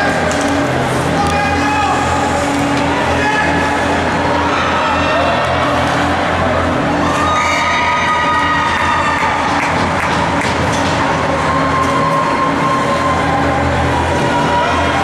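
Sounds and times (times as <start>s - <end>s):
low machine hum: 0.0s - 15.0s
spectators calling and cheering: 0.0s - 15.0s.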